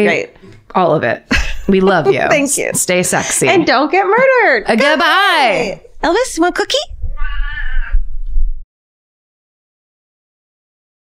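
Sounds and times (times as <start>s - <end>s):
low rumble: 5.9s - 8.6s
cat meowing: 7.1s - 8.1s.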